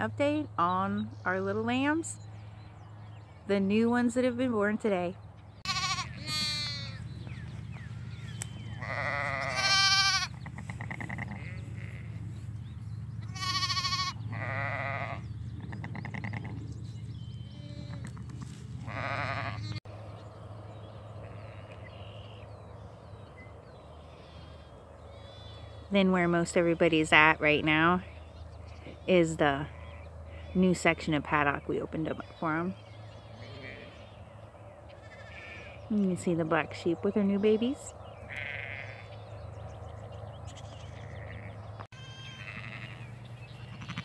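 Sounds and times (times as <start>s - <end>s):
faint field noise: 0.0s - 44.0s
sheep bleating: 5.6s - 7.0s, 8.8s - 12.2s, 13.3s - 15.3s, 18.9s - 19.8s, 33.3s - 34.1s, 34.9s - 35.8s, 38.3s - 39.2s, 40.5s - 44.0s.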